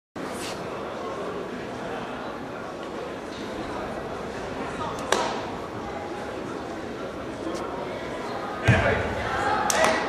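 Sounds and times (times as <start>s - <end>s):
murmur of voices: 0.2s - 10.0s
sharp slap echoing in hall: 5.0s - 5.6s, 8.6s - 10.0s.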